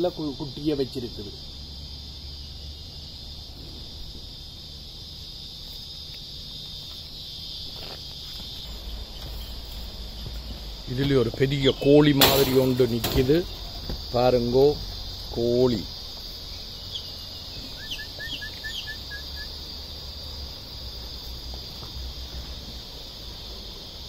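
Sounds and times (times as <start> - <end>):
high-pitched insect chorus: 0.0 - 24.0.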